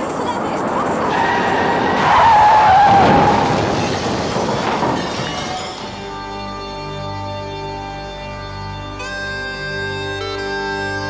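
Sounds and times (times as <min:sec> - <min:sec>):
car crash noise: 0:00.0 - 0:06.3
car tyres screeching: 0:00.0 - 0:06.4.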